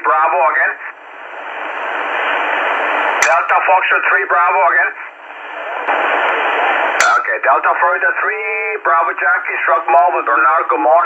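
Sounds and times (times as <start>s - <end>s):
radio static hiss: 0.0s - 11.0s.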